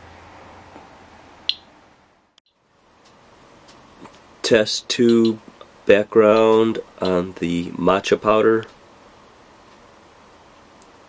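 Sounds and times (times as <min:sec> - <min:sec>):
steady low hum and hiss: 0:00.0 - 0:11.0
sharp high click: 0:05.0 - 0:05.4.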